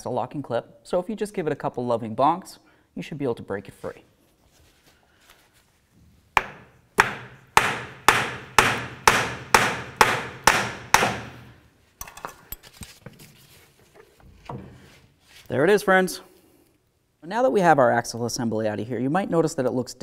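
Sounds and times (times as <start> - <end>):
hammer blows ringing: 6.4 - 11.5.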